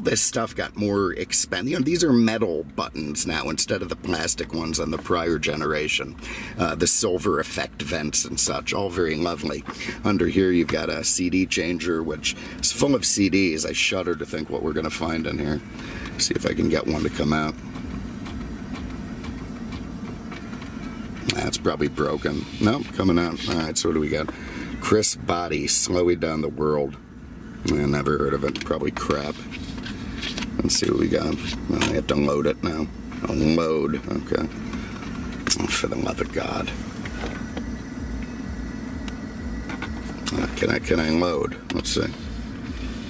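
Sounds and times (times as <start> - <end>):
car engine idling hum: 0.0 - 43.0.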